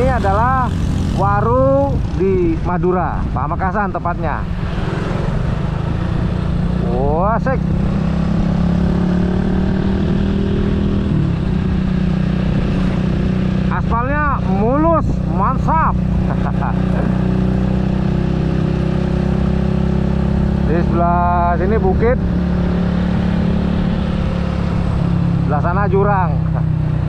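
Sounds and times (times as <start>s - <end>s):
wind rush on microphone: 0.0s - 7.0s, 7.6s - 16.4s
motorcycle engine running: 0.0s - 27.0s.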